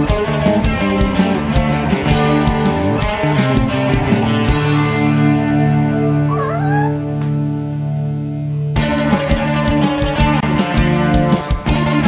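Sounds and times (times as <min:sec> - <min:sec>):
rock music with guitar: 0:00.0 - 0:12.0
puppy whine: 0:06.2 - 0:07.3.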